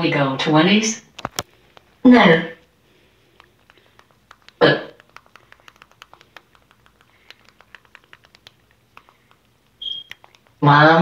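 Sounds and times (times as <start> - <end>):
faint irregular clicks and taps: 3.3 - 10.6.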